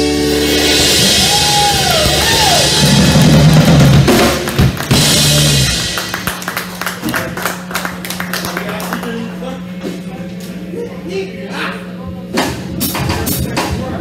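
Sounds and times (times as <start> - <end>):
live rock band playing: 0.0 - 7.0.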